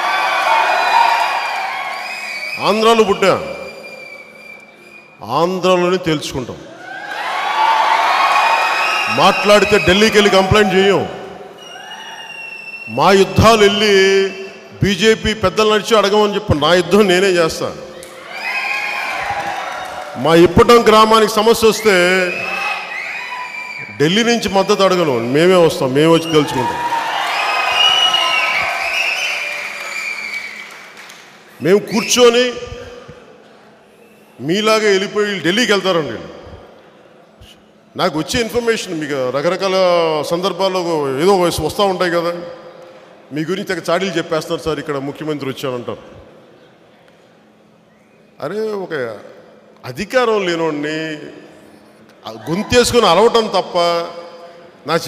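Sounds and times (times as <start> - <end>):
crowd cheering and shouting: 0.0 - 2.6, 6.7 - 12.6, 17.9 - 20.7, 21.8 - 25.5, 26.3 - 30.7
high sustained calls: 1.1 - 5.4, 8.6 - 14.8, 21.6 - 30.8.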